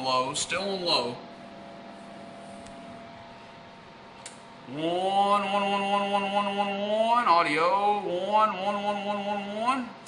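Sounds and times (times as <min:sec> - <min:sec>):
background hum with hiss: 0:00.0 - 0:10.0.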